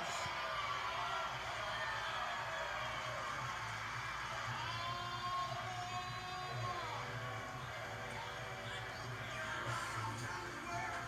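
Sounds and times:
film soundtrack from television: 0.0 - 11.0.

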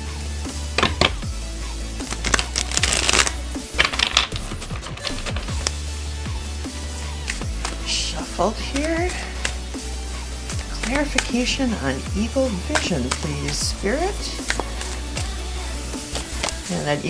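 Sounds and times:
background music: 0.0 - 17.0
cards being shuffled: 0.8 - 1.2, 2.0 - 5.9, 7.1 - 7.9, 8.5 - 9.7, 10.6 - 15.4, 16.0 - 16.7.

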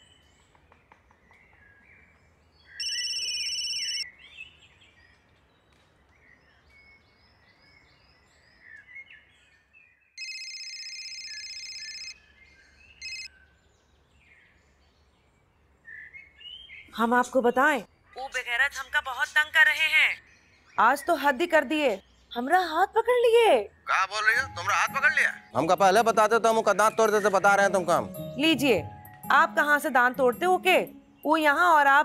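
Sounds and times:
phone ringing tone: 2.8 - 4.0, 10.2 - 12.2, 13.0 - 13.3
birds chirping: 11.2 - 32.0.

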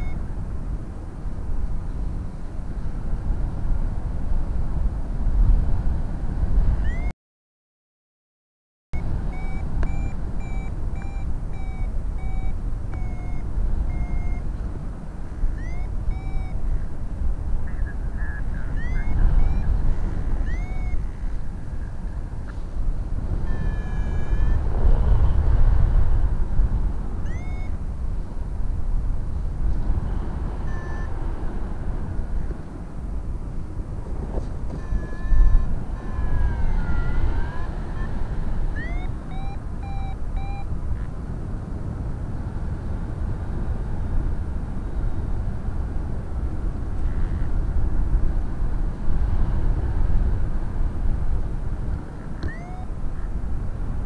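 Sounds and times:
variometer beeps and chirps: 0.0 - 0.2, 6.8 - 7.1, 9.0 - 14.5, 15.5 - 16.6, 17.6 - 21.2, 23.4 - 24.7, 27.2 - 27.8, 30.6 - 31.2, 34.7 - 40.8, 52.4 - 53.0
wind buffeting microphone: 9.0 - 54.0.

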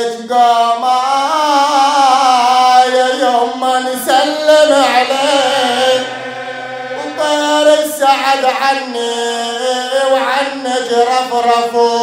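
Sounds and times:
man chanting religious lament: 0.0 - 12.0.

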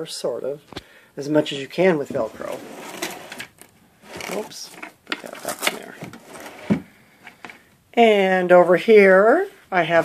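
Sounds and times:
drawer sliding: 2.0 - 6.9.

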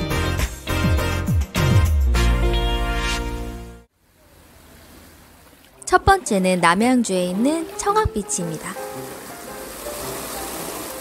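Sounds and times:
stream water rushing over rocks: 4.4 - 11.0
soft background music: 5.8 - 11.0.

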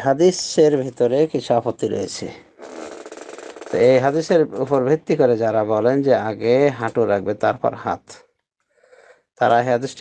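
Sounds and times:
man lecturing: 0.0 - 2.5, 3.7 - 8.2, 9.4 - 10.0.

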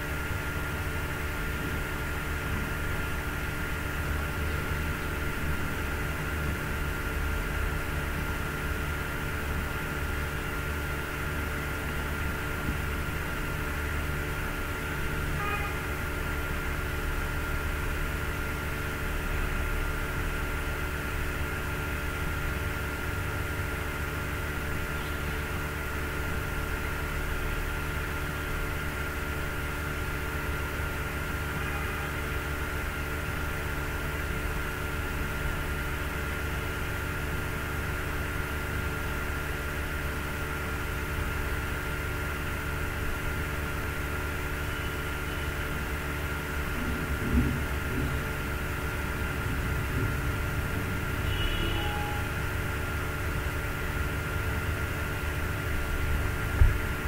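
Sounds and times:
background hum and hiss: 0.0 - 57.0.

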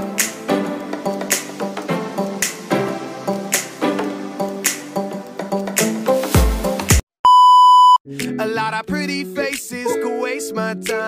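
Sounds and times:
music with singing: 0.0 - 7.0, 8.1 - 11.0
high-pitched electronic beep: 7.3 - 8.0.

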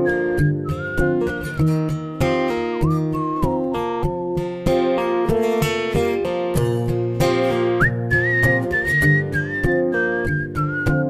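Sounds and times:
whistled melody: 0.0 - 5.4, 7.4 - 11.0
strummed acoustic guitar chords: 0.0 - 11.0.

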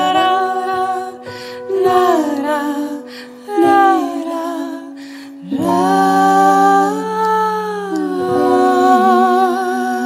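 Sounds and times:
women singing wordless harmony: 0.0 - 10.0.

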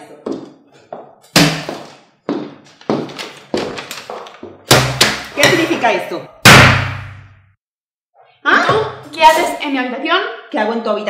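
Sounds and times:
footsteps on hard floor: 0.0 - 4.6.

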